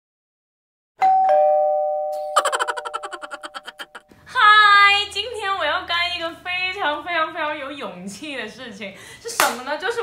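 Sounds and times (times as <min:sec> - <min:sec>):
two-note ding-dong chime: 0:01.0 - 0:02.4.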